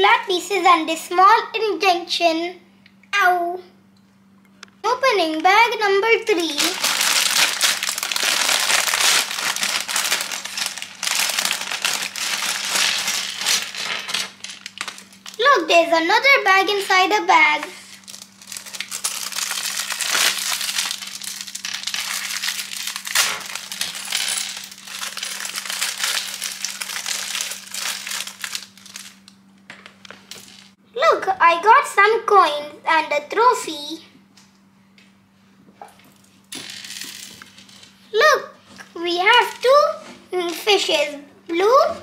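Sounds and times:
plastic bag crinkling: 6.3 - 15.7, 17.8 - 29.3
small plastic pieces rattling: 6.4 - 15.4, 18.0 - 29.2.

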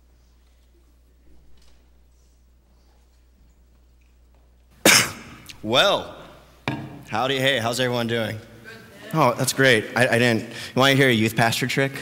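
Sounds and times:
man coughing: 4.8 - 5.6.

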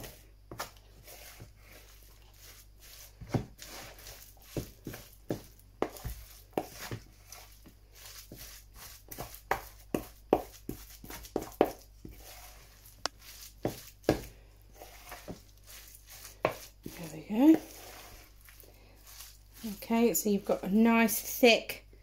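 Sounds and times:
spoon scraping wet batter: 0.0 - 21.2.

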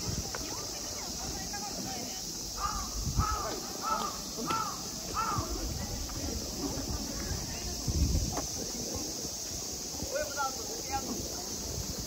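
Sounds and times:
steady high hiss: 0.0 - 12.0
crow cawing: 2.6 - 5.5.

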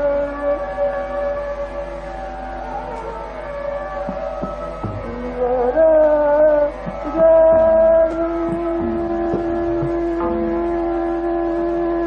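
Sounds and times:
person singing long note: 0.0 - 12.0
sustained accompaniment: 0.0 - 12.0.

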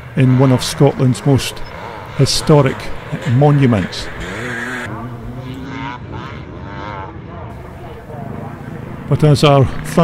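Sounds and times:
motocross bike engines racing: 0.0 - 10.0.

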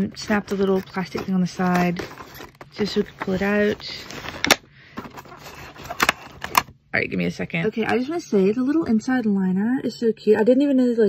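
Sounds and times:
packaging rustling: 0.0 - 6.7.

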